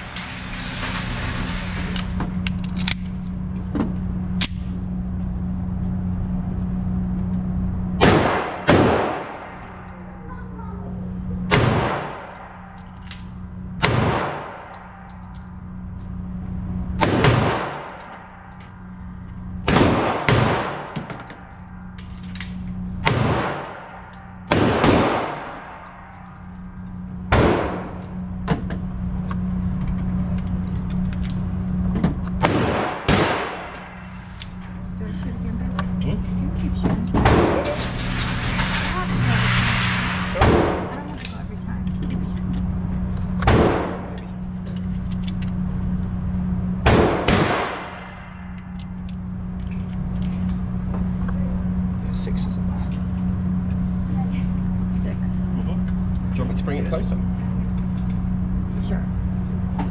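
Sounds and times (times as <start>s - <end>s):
steady low hum: 0.0s - 59.9s
pistol shots echoing: 19.7s - 20.9s, 23.0s - 25.8s, 32.4s - 33.8s, 46.8s - 48.4s.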